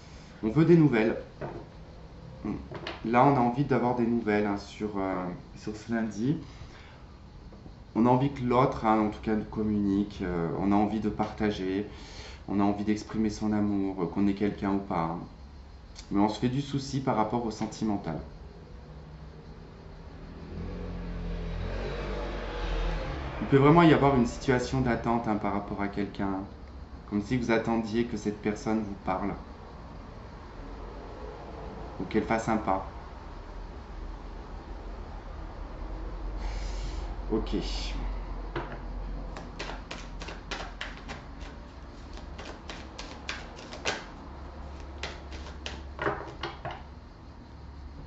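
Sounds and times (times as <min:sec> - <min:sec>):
passing motor vehicle rumble: 0:19.0 - 0:24.4, 0:29.7 - 0:32.1
cards being shuffled: 0:39.3 - 0:46.0.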